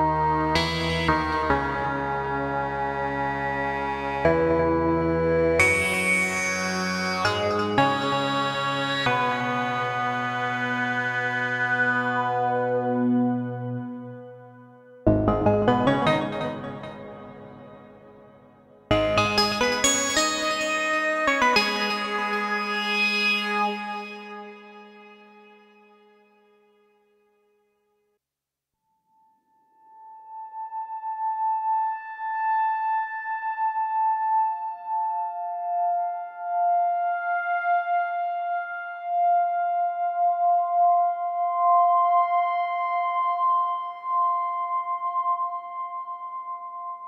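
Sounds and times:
synthesizer pad chord: 0.0s - 25.9s.

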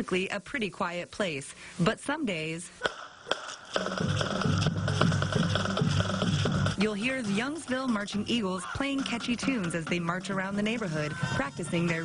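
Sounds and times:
steady drum beat: 2.8s - 12.0s.

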